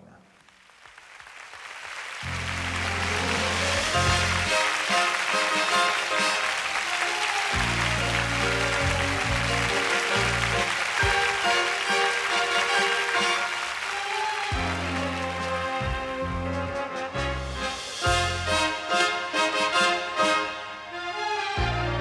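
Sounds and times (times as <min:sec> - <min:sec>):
audience applauding: 0:00.0 - 0:20.1
orchestra playing: 0:02.2 - 0:22.0
low bass notes: 0:02.3 - 0:04.5, 0:07.6 - 0:10.6, 0:14.6 - 0:18.6, 0:21.6 - 0:22.0.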